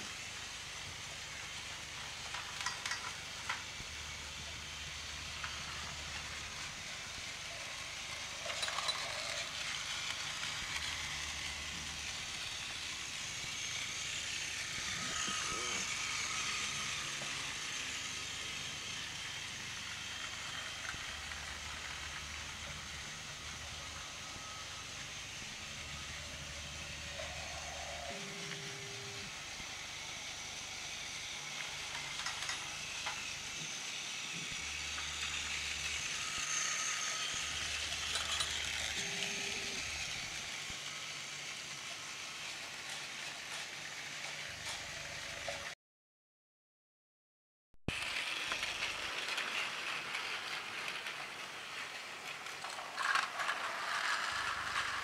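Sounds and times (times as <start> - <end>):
toy train motors whirring: 0.0 - 45.8, 47.9 - 55.0
wheels clicking on track joints: 2.0 - 3.7, 31.6 - 33.2.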